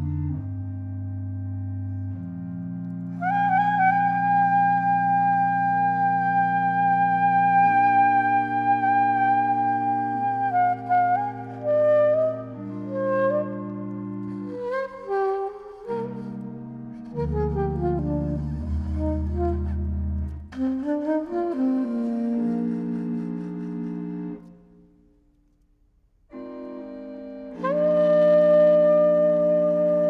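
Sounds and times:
sustained organ chords: 0.0 - 20.6, 21.6 - 25.0, 26.3 - 30.0
saxophone notes: 0.0 - 25.1, 26.3 - 30.0.

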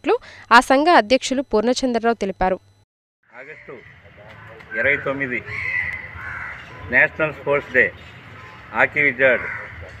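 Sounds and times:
drawn-out bird call: 3.3 - 10.0
man talking: 3.4 - 5.5, 6.8 - 8.0, 8.7 - 10.0.

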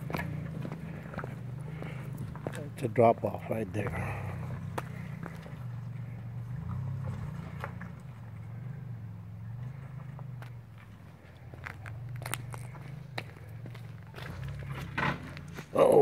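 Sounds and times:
truck engine running low: 0.0 - 16.0.

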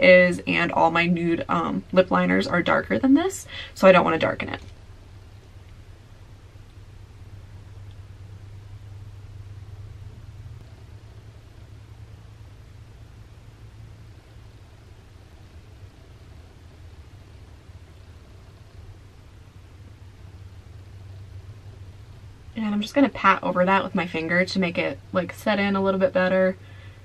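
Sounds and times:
faint hiss: 0.0 - 27.0
steady low hum: 0.0 - 27.0.

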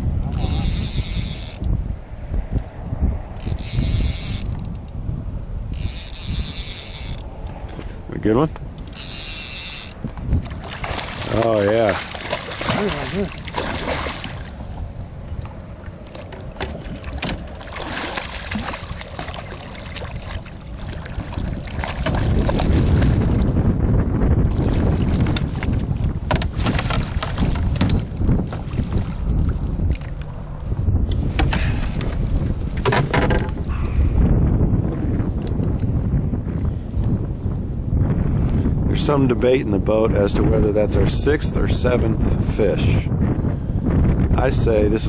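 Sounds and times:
wind rumbling on microphone: 0.0 - 45.0
water sloshing: 10.0 - 23.7, 24.4 - 30.7
knocks of net handling: 10.4 - 14.5, 25.0 - 29.0.

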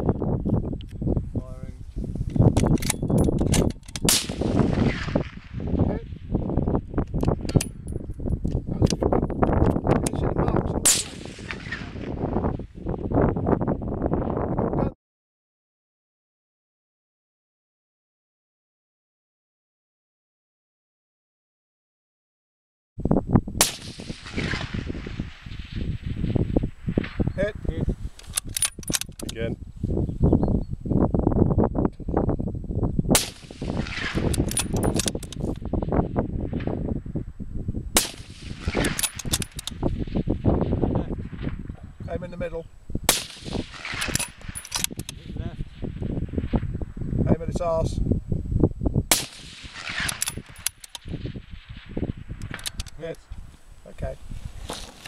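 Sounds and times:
sharp clicks: 2.3 - 4.4, 28.2 - 29.4, 34.0 - 35.6, 38.0 - 39.9, 43.1 - 45.2, 49.1 - 51.1, 52.3 - 53.4
rifle shot echoing: 4.0 - 5.8, 10.8 - 12.6, 23.6 - 27.3, 33.1 - 36.8, 38.0 - 41.7, 43.1 - 46.7, 49.1 - 52.8.

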